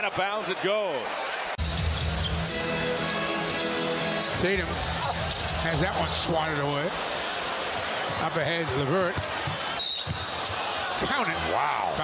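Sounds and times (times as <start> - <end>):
crowd noise: 0.0 - 12.0
arena music: 1.6 - 6.7.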